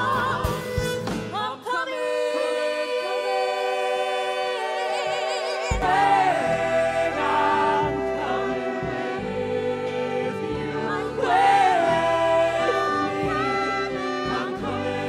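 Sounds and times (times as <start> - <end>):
band bass: 0.0 - 1.5.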